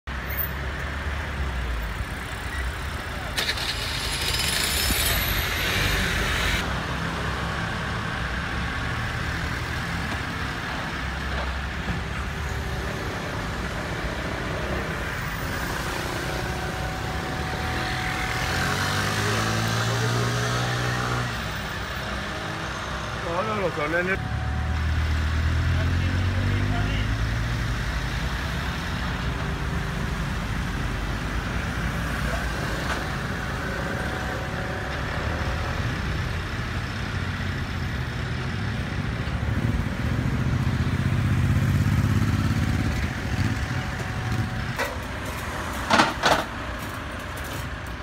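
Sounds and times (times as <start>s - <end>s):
street traffic: 0.0s - 48.0s.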